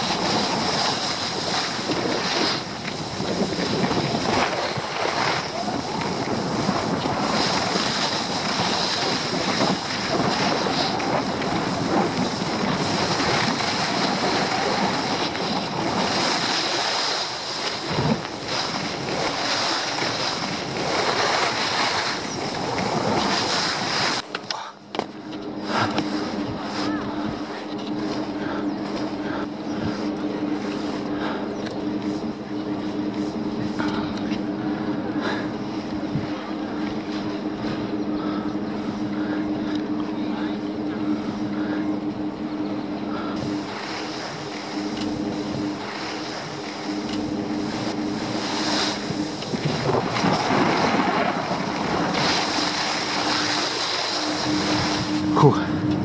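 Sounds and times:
skis scraping on snow: 0.0s - 24.3s, 25.6s - 34.4s, 43.2s - 55.8s
wind rushing over microphone: 0.0s - 24.3s, 25.2s - 56.0s
low hum of held tones: 0.0s - 56.0s.

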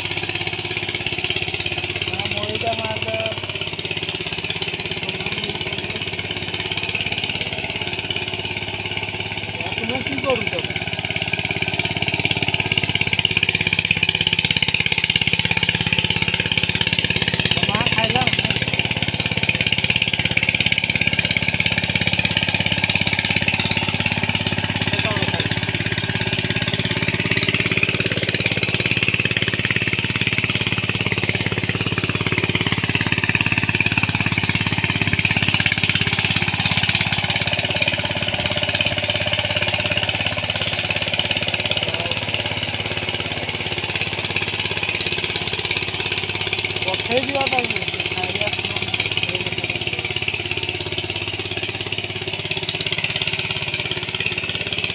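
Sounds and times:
power tiller engine running: 0.0s - 54.9s.

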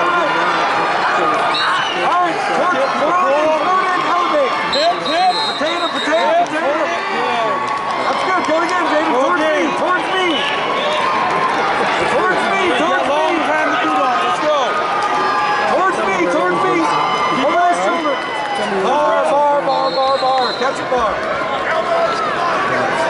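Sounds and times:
crowd talking and shouting: 0.0s - 23.0s.

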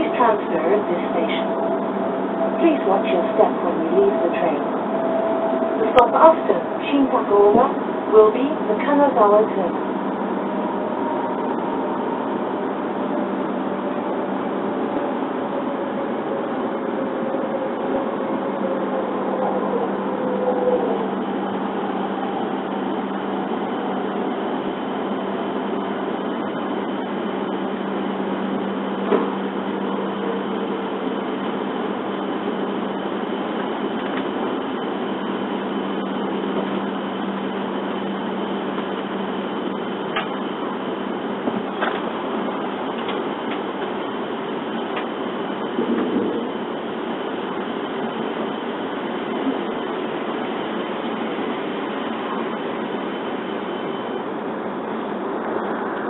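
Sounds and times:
faint whine dropping in pitch: 0.0s - 27.5s
train running rumbling hiss: 0.0s - 56.0s.

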